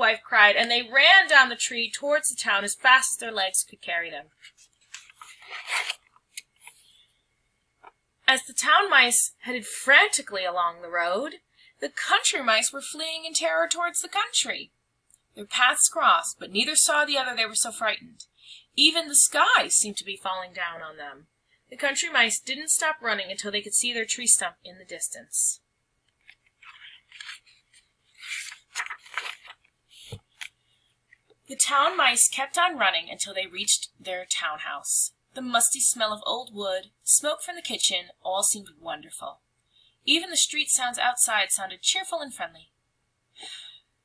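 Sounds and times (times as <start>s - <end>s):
paper page rustling: 4.3s - 6.8s, 26.2s - 30.6s.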